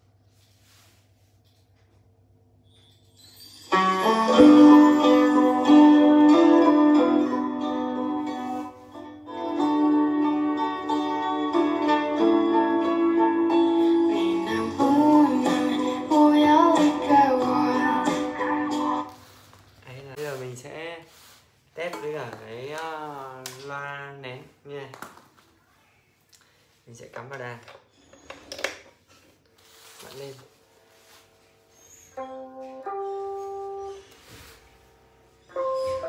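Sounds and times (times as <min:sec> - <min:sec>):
recorded music through small speaker: 0:03.8 - 0:19.6.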